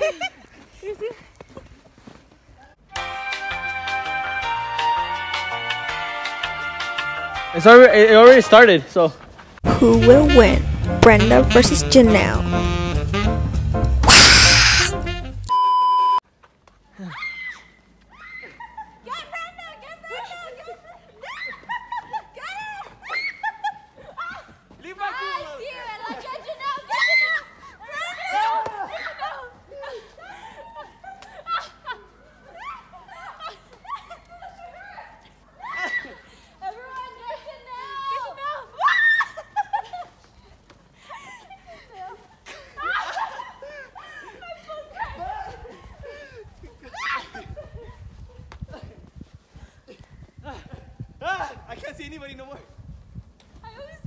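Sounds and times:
people laughing and shrieking: 0:26.1 - 0:36.4, 0:37.4 - 0:40.2, 0:41.1 - 0:48.3.

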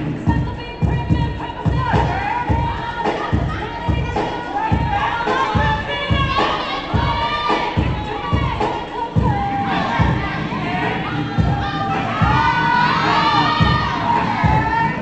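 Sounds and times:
dance music with low beat: 0:00.0 - 0:15.0
audience cheering and shouting: 0:00.8 - 0:15.0.

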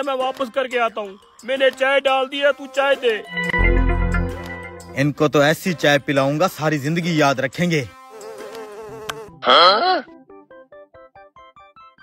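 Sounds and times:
housefly buzzing: 0:07.5 - 0:09.6.

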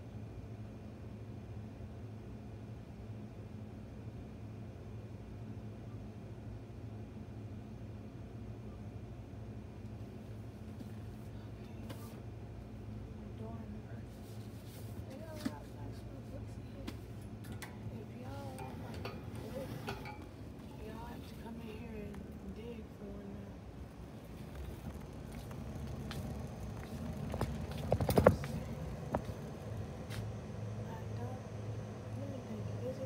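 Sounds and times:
steady low hum: 0:00.0 - 0:33.0
indistinct background voices: 0:15.1 - 0:33.0.

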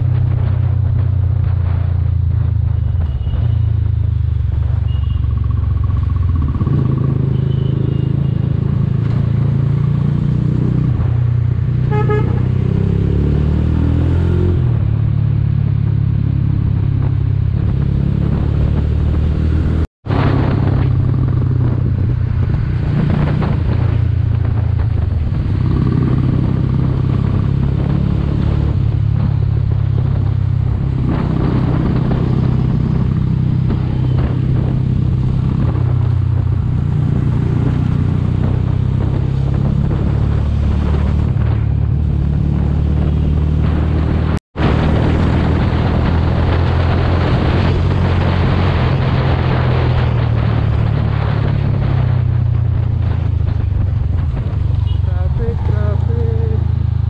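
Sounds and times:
motorcycle engine running: 0:00.0 - 0:13.2, 0:16.3 - 0:57.0
wind and road noise: 0:00.0 - 0:57.0
horn toot: 0:11.8 - 0:12.7.

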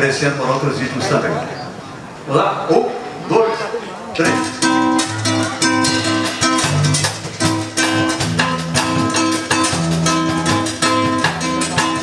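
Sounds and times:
acoustic guitar strumming samba rhythm: 0:04.2 - 0:12.0
electric bass low notes: 0:04.2 - 0:12.0.

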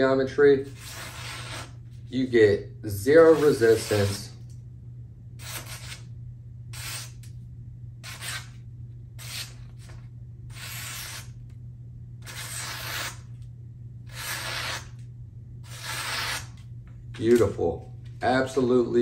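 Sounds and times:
low hum: 0:00.0 - 0:19.0
knife slicing paper: 0:00.7 - 0:01.8, 0:03.2 - 0:04.4, 0:12.2 - 0:13.3, 0:14.1 - 0:15.0, 0:15.7 - 0:16.6.

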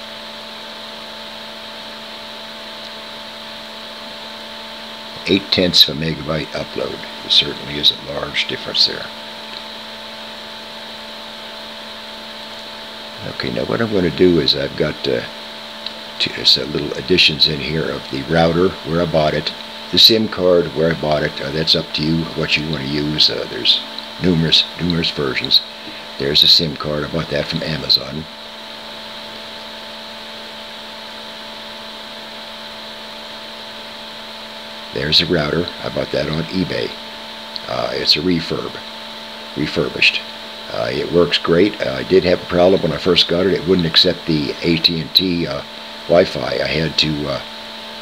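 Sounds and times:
steady background hum with hiss: 0:00.0 - 0:48.0.

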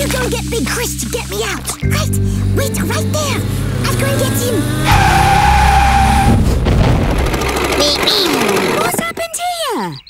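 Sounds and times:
cartoon car engine rumble: 0:01.8 - 0:09.6
cartoon tyre screech: 0:03.9 - 0:06.4.

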